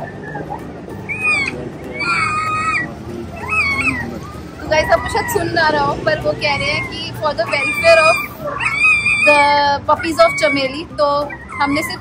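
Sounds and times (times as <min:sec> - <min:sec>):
dog whimpering: 0:00.0 - 0:12.0.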